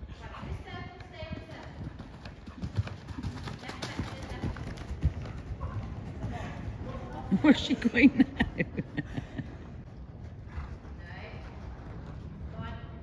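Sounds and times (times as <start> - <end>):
horse hoofbeats on sand: 0.1 - 7.4.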